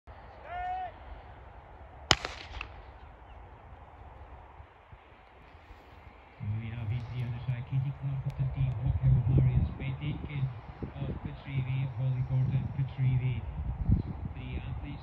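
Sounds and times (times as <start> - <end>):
starting pistol crack: 2.1 - 3.1
low voices: 5.6 - 15.0.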